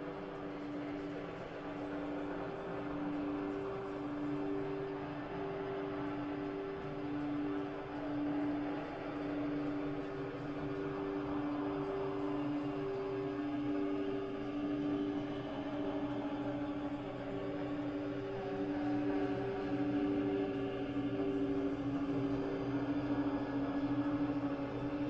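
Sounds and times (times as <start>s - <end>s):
low ambient drone tones: 0.0s - 25.0s.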